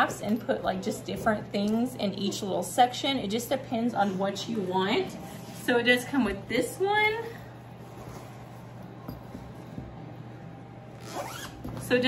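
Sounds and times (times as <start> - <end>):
zipper rasp: 10.9 - 11.7.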